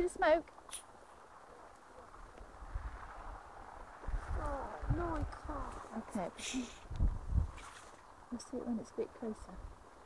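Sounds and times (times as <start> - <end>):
faint low rumbling: 1.0 - 9.8.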